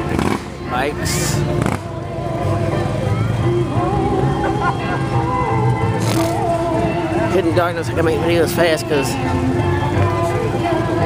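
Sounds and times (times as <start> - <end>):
people talking: 0.0 - 1.5, 7.2 - 9.2
vehicle engine rumbling: 0.0 - 11.0.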